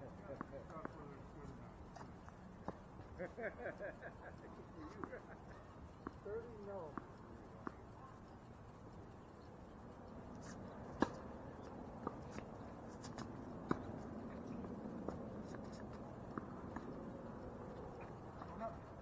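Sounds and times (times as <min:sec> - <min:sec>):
tennis ball bouncing: 0:04.9 - 0:05.2, 0:06.9 - 0:08.0, 0:10.4 - 0:19.0.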